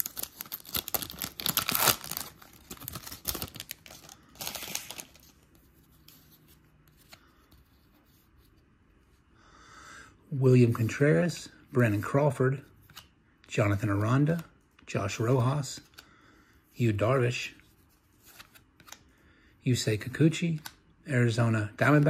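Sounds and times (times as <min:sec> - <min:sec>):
foil wrapper tearing and crinkling: 0:00.0 - 0:05.3
faint handling sounds: 0:02.1 - 0:09.3.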